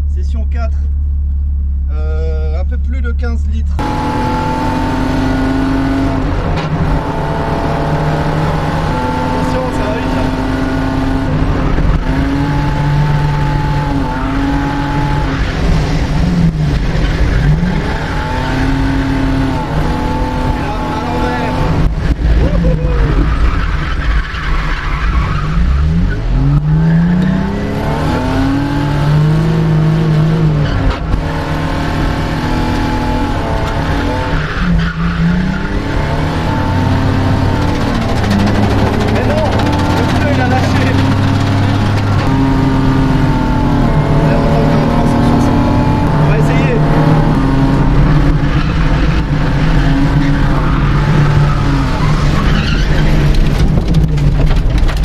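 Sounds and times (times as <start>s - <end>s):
car engine revving: 0.0s - 55.0s
tyres skidding and squealing: 3.7s - 55.0s.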